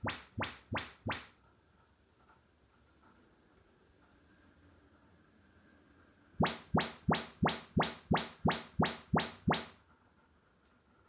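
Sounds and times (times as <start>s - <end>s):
quick rising test sweeps: 6.4s - 9.7s.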